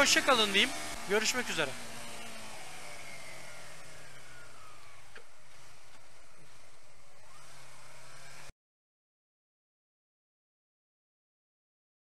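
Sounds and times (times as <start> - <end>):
motorcycle engine running: 0.0 - 8.5
wind and road noise: 0.0 - 8.5.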